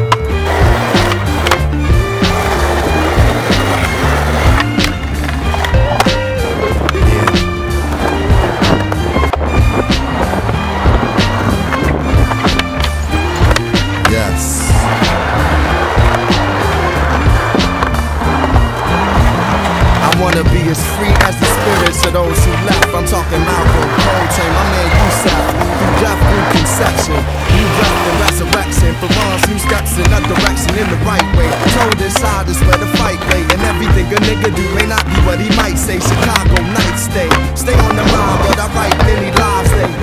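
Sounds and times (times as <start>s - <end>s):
hip-hop backing track: 0.0s - 40.0s
skateboard wheels rolling on concrete: 0.0s - 40.0s.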